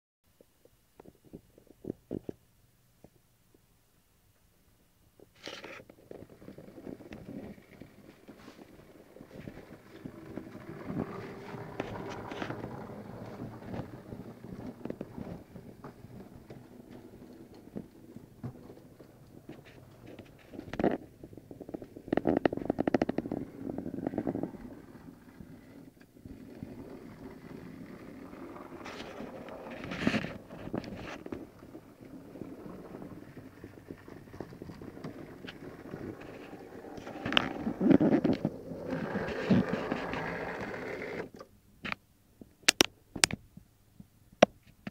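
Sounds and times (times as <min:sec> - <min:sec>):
model train rumbling on track: 0:06.2 - 0:20.6, 0:22.7 - 0:41.3.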